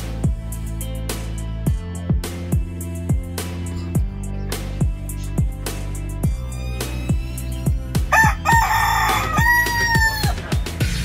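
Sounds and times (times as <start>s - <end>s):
background music with drum beat: 0.0s - 11.0s
rooster crowing: 8.1s - 10.4s.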